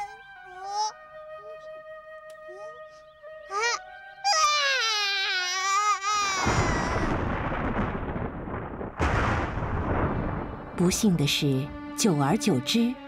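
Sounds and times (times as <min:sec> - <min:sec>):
cartoon child wailing: 0:00.0 - 0:00.9, 0:03.5 - 0:07.2
dense crash-like noise: 0:06.5 - 0:10.8.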